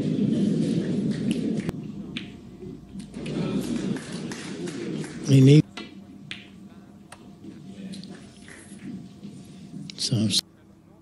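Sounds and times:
snooker balls clicking together: 0.5 - 2.4.

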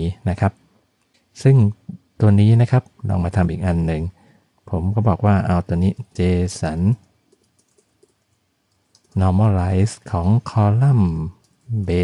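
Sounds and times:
person speaking: 0.0 - 0.6, 1.3 - 7.8, 9.0 - 12.0
computer keyboard typing: 7.0 - 9.4, 11.4 - 11.8.

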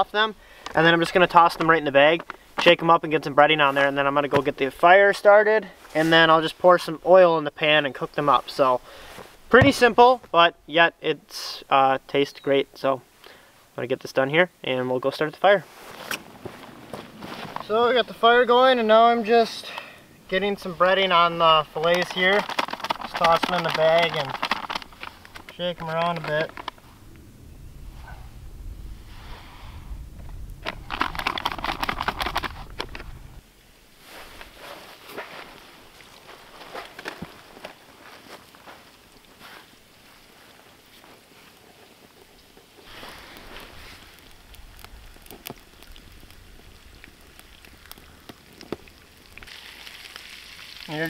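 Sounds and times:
crackles and pops of frying: 0.0 - 5.3, 11.3 - 27.3, 30.0 - 51.0
fish frying in oil: 42.6 - 51.0.

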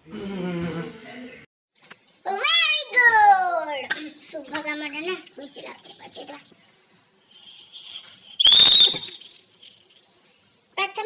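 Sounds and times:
shrill whistle blast: 8.3 - 9.3.

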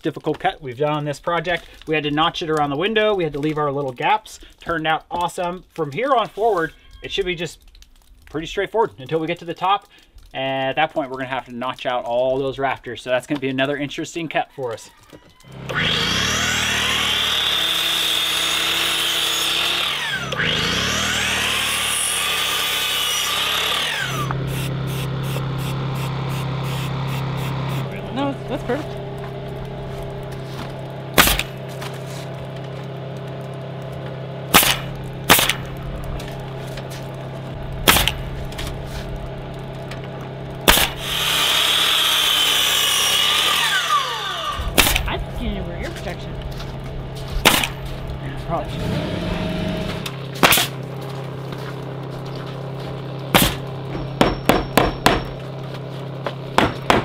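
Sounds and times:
miter saw cutting wood: 15.4 - 57.0
steady low hum: 24.1 - 41.5, 44.3 - 57.0
nail gun firing: 31.2 - 31.6, 34.5 - 35.7, 37.8 - 38.2, 40.7 - 43.5, 44.7 - 45.1, 47.4 - 47.8, 50.4 - 50.7, 53.3 - 55.3, 56.6 - 57.0.

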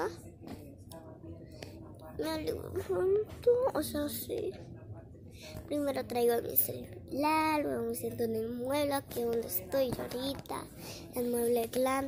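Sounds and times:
girl talking: 2.2 - 4.5, 5.7 - 12.0.

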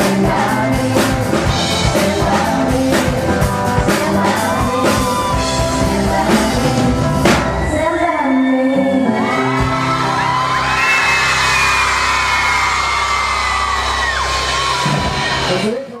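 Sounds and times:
pop band holding a chord: 0.0 - 15.8
crowd screaming and cheering: 7.4 - 15.9.

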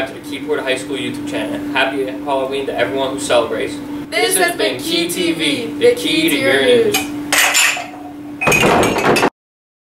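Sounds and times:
ceramic mugs clattering: 7.0 - 9.3.

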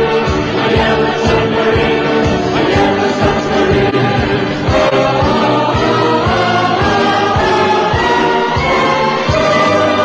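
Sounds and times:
many voices singing together: 0.0 - 10.0
steady drum beat: 0.0 - 10.0.

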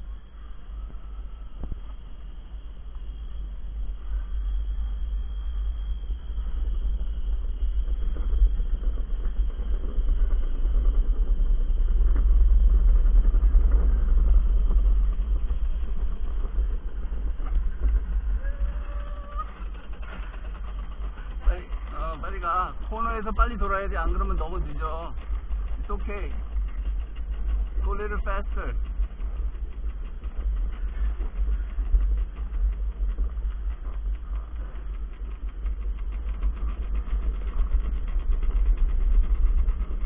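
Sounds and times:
cart wheels rumbling on concrete: 0.0 - 40.0
wind on microphone: 0.0 - 40.0.

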